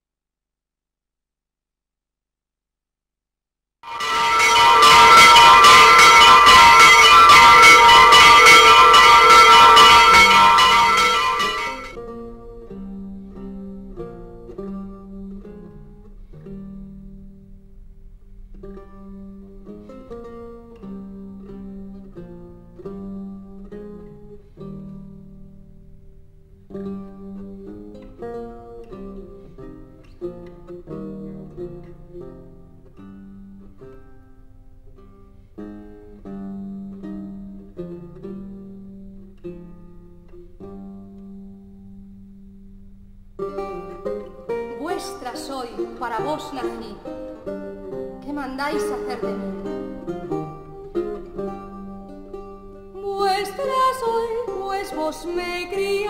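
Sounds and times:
plucked string melody: 3.8 - 56.0
bells ringing: 3.9 - 12.0.

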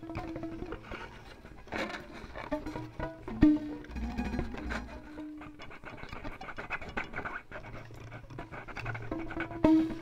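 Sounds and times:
held violin tone: 0.0 - 5.6
scratching violin string noises: 0.0 - 10.0.

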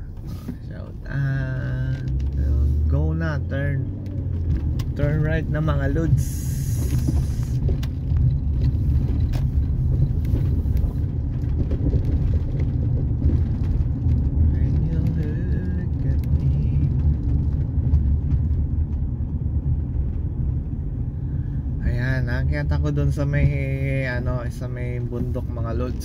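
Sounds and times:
car engine and tyre rumble: 0.0 - 26.0.

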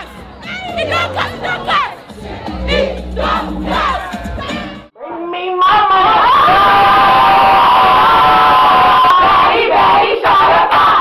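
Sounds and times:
bass-heavy music: 0.0 - 4.9
crowd screaming and cheering: 0.0 - 4.9, 5.8 - 11.0.

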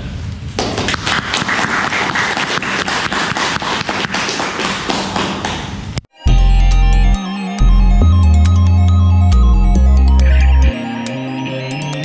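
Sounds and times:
audience applauding: 0.8 - 5.6.

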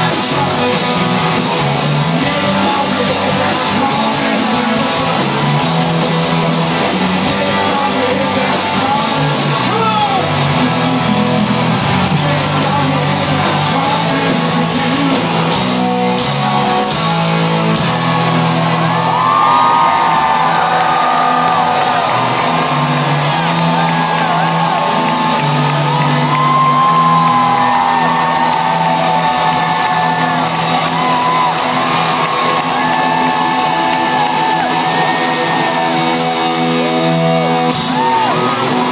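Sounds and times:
live rock band playing: 0.0 - 38.9.

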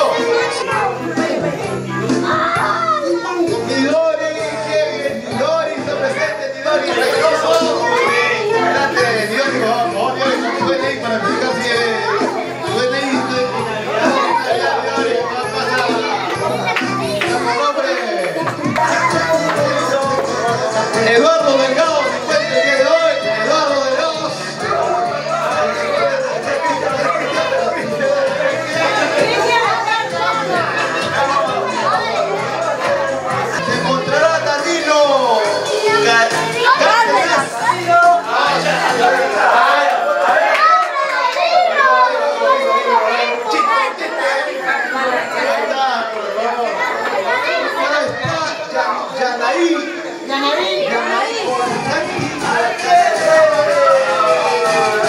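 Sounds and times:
music: 0.0 - 40.7, 50.0 - 55.0
children chattering and calling out: 0.0 - 55.0.

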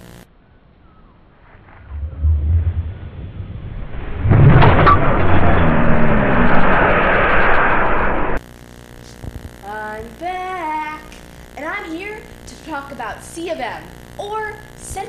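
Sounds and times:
loud steady hiss: 0.0 - 0.3, 8.4 - 15.0
low rumble: 1.1 - 8.4.

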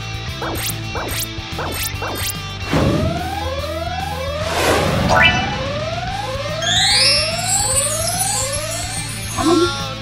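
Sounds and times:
bright rising synth sweep: 2.7 - 9.4
rising synth tone: 2.7 - 9.5.

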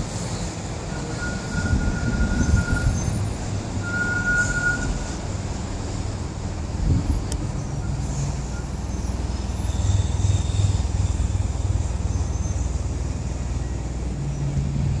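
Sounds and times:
low rumble of city traffic: 0.0 - 15.0.

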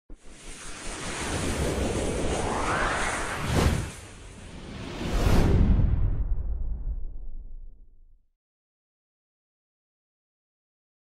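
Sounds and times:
whoosh with low rumble: 0.1 - 8.2.

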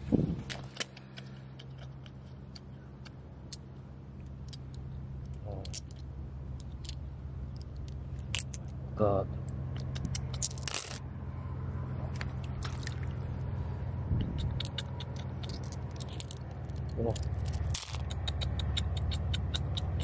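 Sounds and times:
steady low hum: 0.0 - 20.0
glass gems clicking: 14.4 - 20.0.

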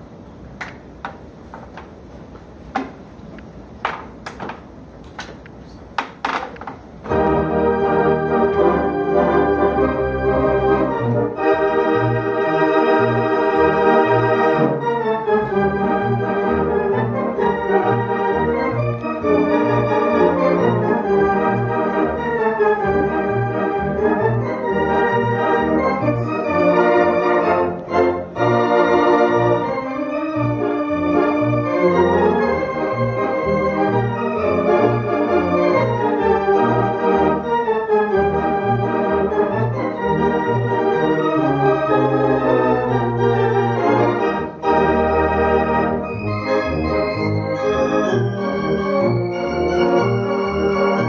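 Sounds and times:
organ playing a march: 7.0 - 51.0
organ pedal bass beat: 7.1 - 51.0.

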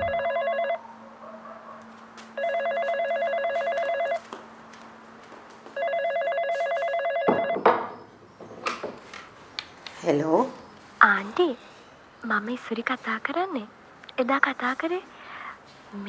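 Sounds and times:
telephone ringing: 0.0 - 0.8, 2.4 - 4.2, 5.8 - 7.7.

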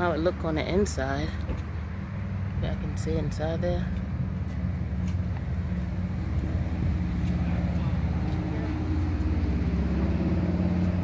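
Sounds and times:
idling engine drone: 0.0 - 11.0.

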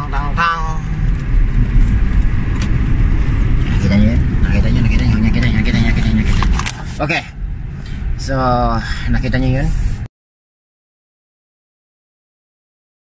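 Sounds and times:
car engine and tyres rumbling: 0.0 - 10.1.

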